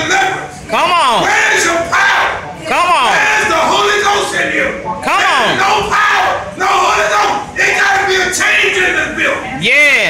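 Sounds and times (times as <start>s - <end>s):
voices shouting: 0.0s - 9.4s.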